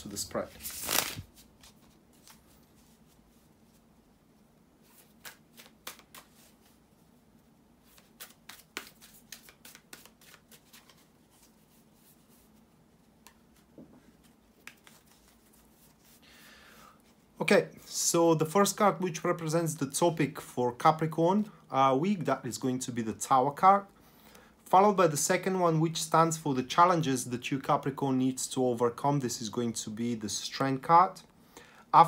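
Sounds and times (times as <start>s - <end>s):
cards flicking and tapping: 5.0s - 6.5s, 7.9s - 11.0s, 14.6s - 15.4s.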